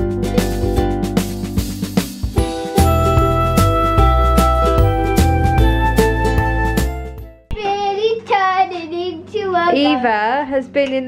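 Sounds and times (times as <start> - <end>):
background music: 0.0 - 7.6.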